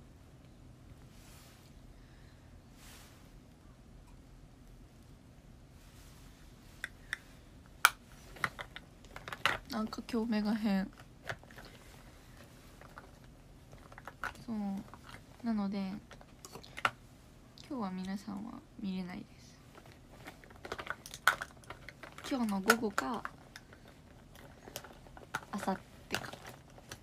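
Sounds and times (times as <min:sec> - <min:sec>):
woman speaking: 0:09.7 - 0:11.0, 0:14.3 - 0:16.1, 0:17.5 - 0:19.7, 0:22.2 - 0:23.3, 0:25.5 - 0:25.9.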